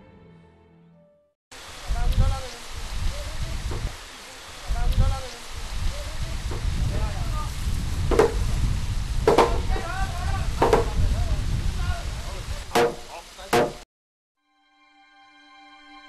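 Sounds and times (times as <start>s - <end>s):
hammer blows on timber: 8.0s - 8.4s, 9.2s - 9.9s, 10.5s - 11.0s, 12.7s - 13.8s.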